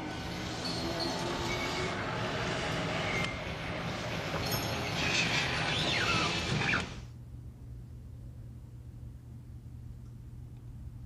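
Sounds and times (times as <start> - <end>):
gliding high squeals: 0.0 - 7.0.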